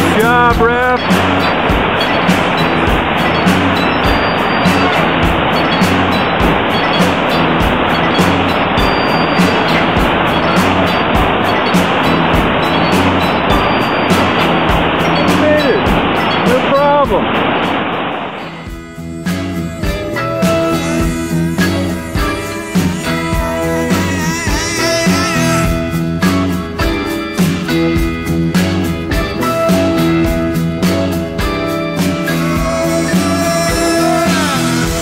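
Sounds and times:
rushing whitewater: 0.0s - 26.2s
music with steady beat: 0.0s - 35.0s.

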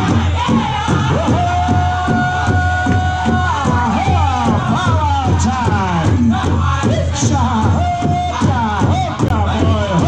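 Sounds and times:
big drum beating: 0.0s - 10.0s
drum group singing: 0.0s - 10.0s.

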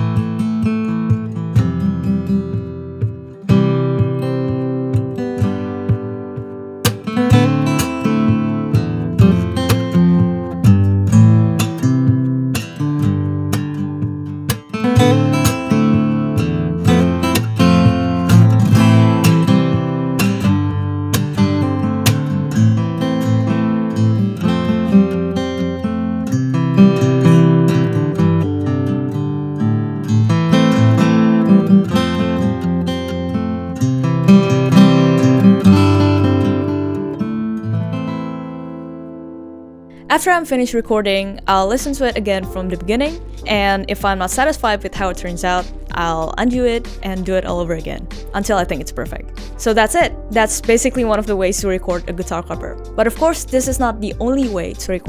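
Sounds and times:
fingerstyle acoustic guitar: 0.0s - 40.8s.

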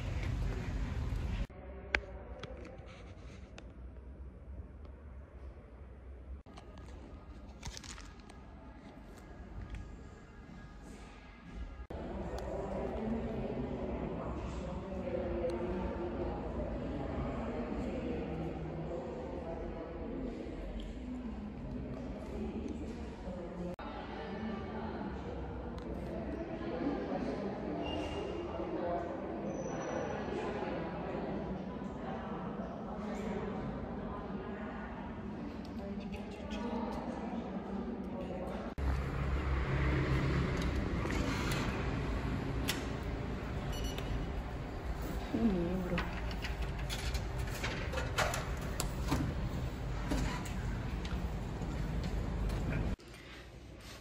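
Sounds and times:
distant people talking: 6.5s - 53.9s
crowd chatter: 6.5s - 54.0s.

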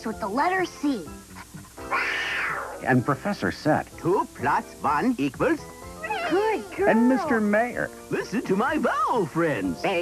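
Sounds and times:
soft background music: 0.0s - 10.0s
cartoon cat meow: 6.0s - 7.4s.

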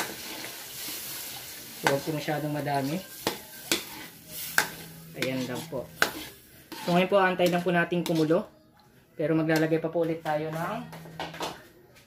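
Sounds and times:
metal ladle stirring in a wok: 0.0s - 8.4s
low sizzle: 0.0s - 8.5s.

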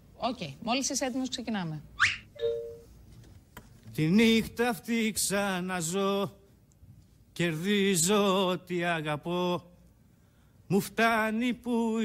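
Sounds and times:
two-note ding-dong chime: 2.4s - 2.9s.

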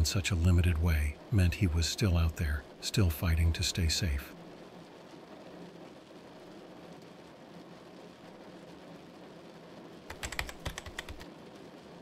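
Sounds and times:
faint background hiss: 0.0s - 12.0s
fast computer keyboard typing: 10.1s - 11.3s.

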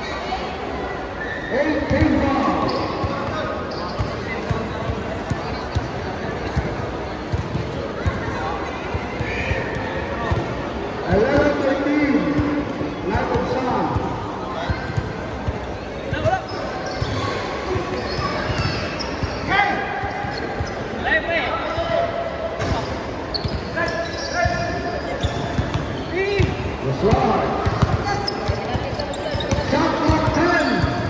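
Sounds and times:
voices calling out in echoing hall: 0.0s - 31.0s.

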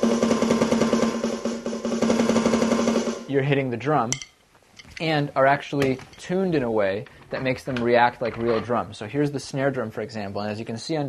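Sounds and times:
electronic snare drum roll: 0.0s - 3.5s.

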